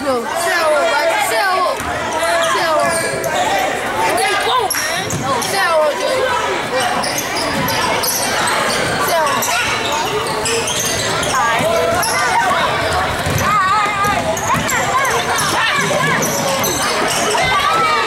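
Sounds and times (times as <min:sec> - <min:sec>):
voices calling out: 0:00.0 - 0:18.0.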